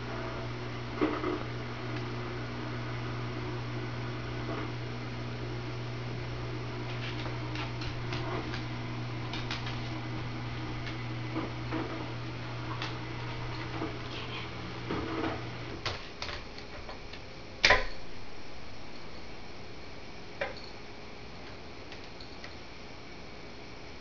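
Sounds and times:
low hum: 0.0s - 15.8s
claws clicking on hardwood floor: 9.3s - 10.0s.

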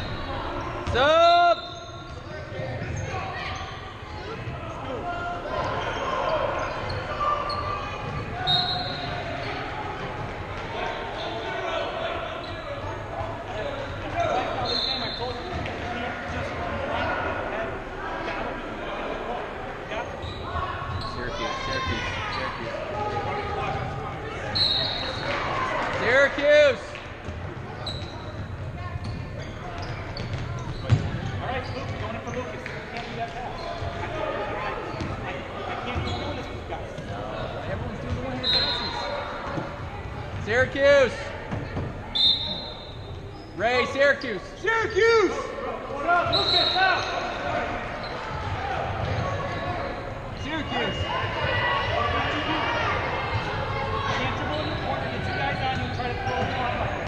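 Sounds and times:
sneaker squeaks: 0.0s - 4.8s, 5.5s - 11.6s, 12.3s - 15.7s, 20.0s - 22.6s, 24.4s - 25.6s, 27.6s - 34.1s, 34.8s - 40.4s, 41.5s - 43.8s, 46.1s - 51.4s, 54.0s - 57.0s
basketball bouncing on court: 29.8s - 32.1s.

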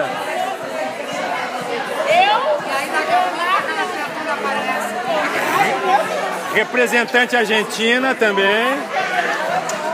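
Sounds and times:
crowd chatter: 0.0s - 9.9s.

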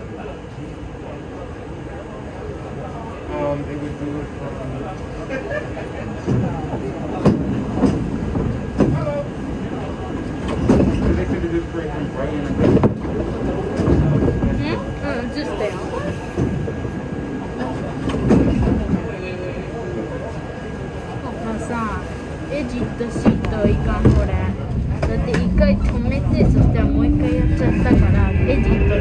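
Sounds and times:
subway car rumble: 0.0s - 29.0s.

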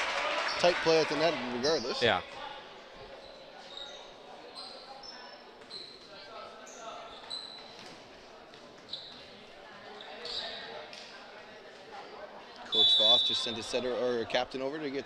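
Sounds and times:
sneaker squeaks on wooden court: 3.2s - 8.1s, 8.8s - 9.3s, 9.9s - 10.7s.

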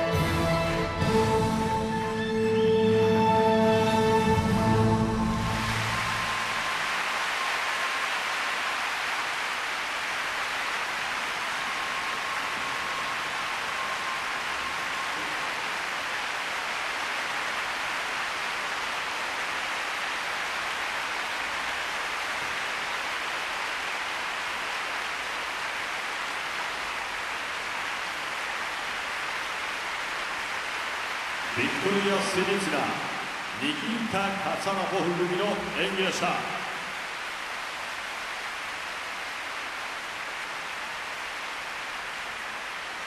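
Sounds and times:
large crowd applauding: 0.0s - 43.0s.

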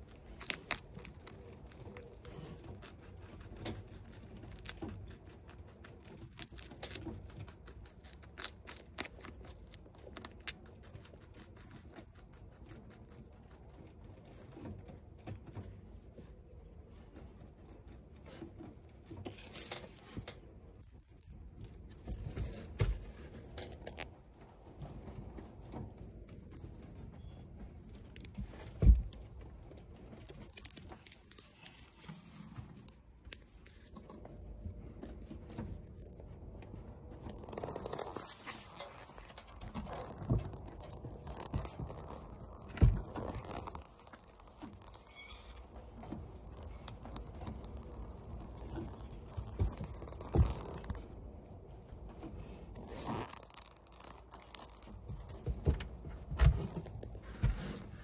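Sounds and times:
low background rumble: 0.0s - 58.0s
rabbit chewing crisp leaf: 0.0s - 58.0s.

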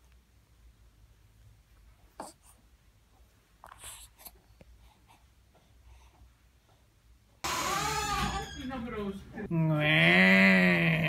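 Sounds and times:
person speaking: 8.6s - 11.0s.

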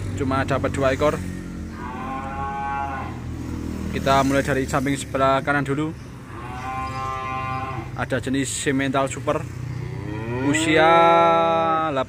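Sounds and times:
bull mooing: 1.3s - 3.5s, 6.3s - 8.0s, 9.7s - 11.7s.

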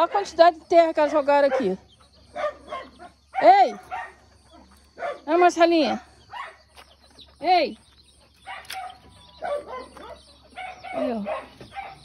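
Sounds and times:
chickens calling: 0.0s - 12.0s.

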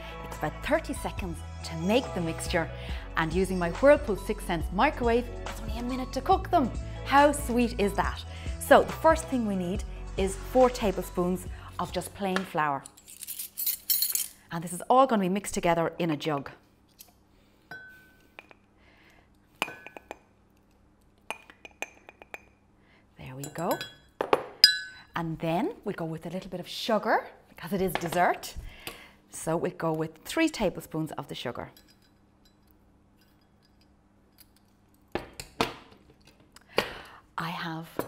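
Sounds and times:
metal spoon clinking on glass jar: 23.4s - 25.0s, 31.8s - 34.7s.

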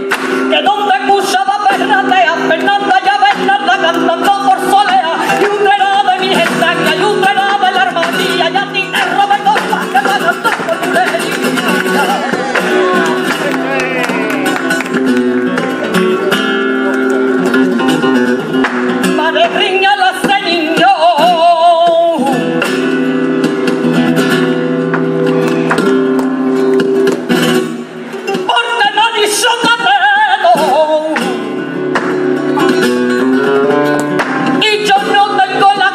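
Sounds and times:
woman singing wordless melody: 0.0s - 13.2s, 19.0s - 22.4s, 28.4s - 31.5s, 34.5s - 35.9s
flamenco guitar: 0.0s - 35.9s.

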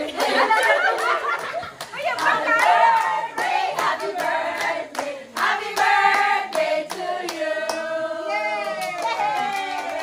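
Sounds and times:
rhythmic clapping: 0.0s - 8.0s, 8.6s - 10.0s
women singing together: 0.0s - 10.0s.

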